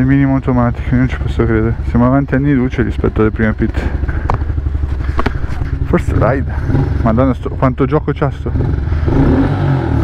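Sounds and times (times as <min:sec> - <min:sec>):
motorcycle engine idling: 0:00.0 - 0:09.1.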